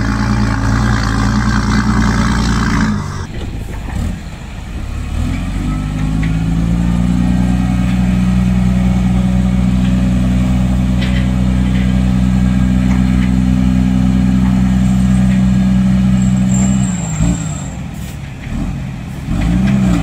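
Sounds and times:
diesel truck engine revving: 0:00.0 - 0:20.0.

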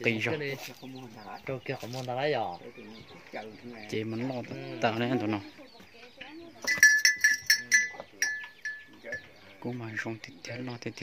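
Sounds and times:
cow bell clanking: 0:06.5 - 0:09.5.

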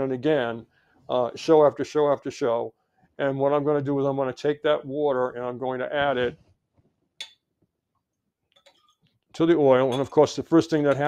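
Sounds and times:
glassware clinking: 0:07.2 - 0:07.4, 0:08.6 - 0:09.1, 0:09.8 - 0:11.0.

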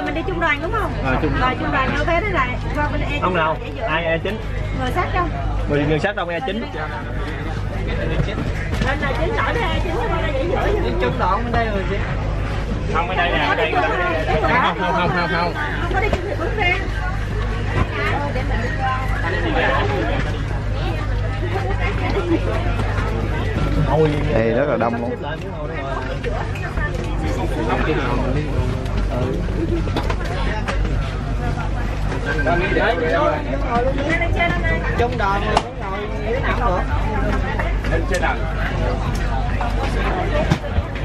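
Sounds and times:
low machinery hum: 0:00.0 - 0:41.0
passengers chattering: 0:00.0 - 0:41.0
people talking: 0:00.0 - 0:41.0.

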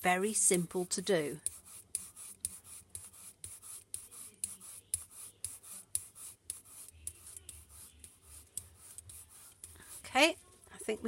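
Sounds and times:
sponge brayer rolling on card: 0:01.4 - 0:10.6.

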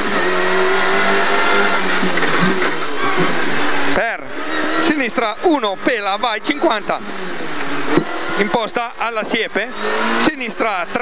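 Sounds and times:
car engine running hard: 0:00.0 - 0:11.0.

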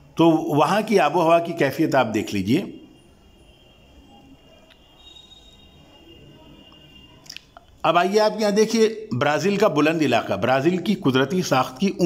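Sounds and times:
faint high whine: 0:00.0 - 0:09.6
man speaking: 0:00.2 - 0:02.8, 0:07.8 - 0:12.0.

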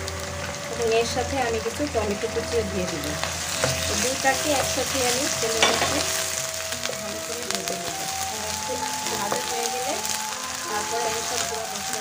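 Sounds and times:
background music: 0:00.0 - 0:12.0
onions sizzling in oil: 0:00.0 - 0:12.0
spatula stirring in wok: 0:02.8 - 0:06.9.

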